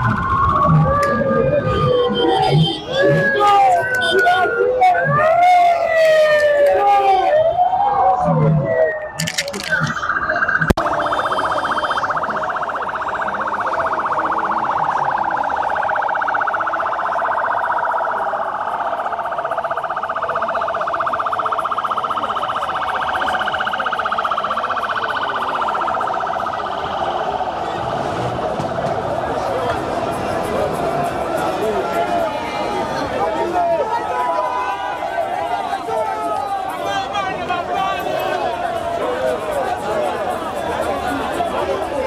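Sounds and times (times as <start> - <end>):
crowd noise: 0.0 - 42.0
warbling siren: 0.0 - 42.0.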